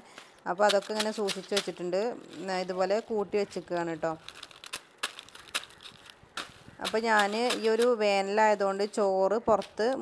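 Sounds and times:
dry palm fronds rustling: 0.0 - 10.0.

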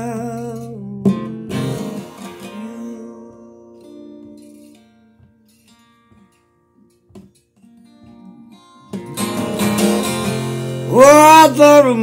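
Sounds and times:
acoustic guitar strummed: 0.0 - 12.0.

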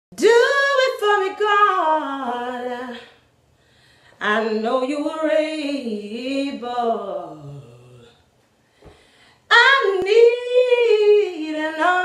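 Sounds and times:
woman singing a cappella: 0.1 - 3.3, 4.1 - 8.3, 9.4 - 12.0.

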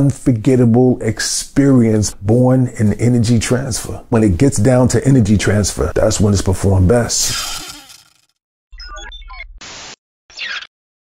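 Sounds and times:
static hiss bursts: 9.6 - 10.0.

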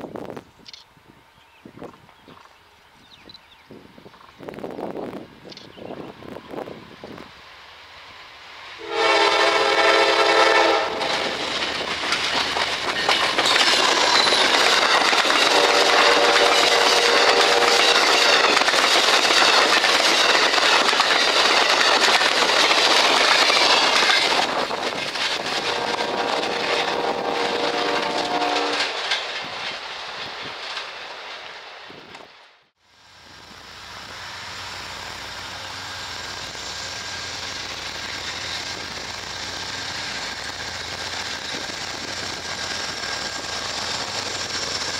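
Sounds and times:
train passing at speed: 1.1 - 44.9
train horn: 8.8 - 11.4, 15.4 - 18.5, 25.5 - 29.0
wheels clattering over rails: 11.0 - 27.0, 28.0 - 32.4.

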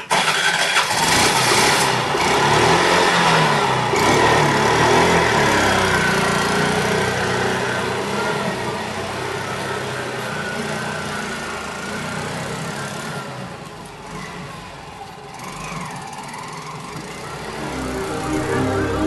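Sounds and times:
motor tricycle engine pulling away: 0.0 - 19.0.

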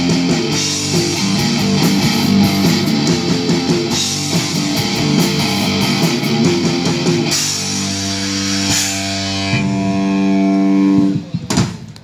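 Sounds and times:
electric guitar and bass chord: 0.0 - 11.4.

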